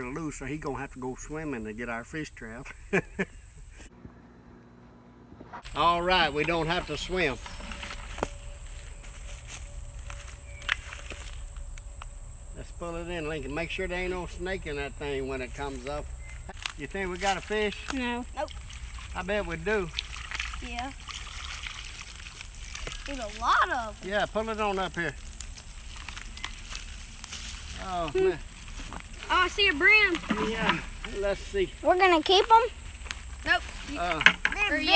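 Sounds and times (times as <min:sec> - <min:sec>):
high-pitched insect drone: 0:00.0 - 0:03.9, 0:05.7 - 0:34.9.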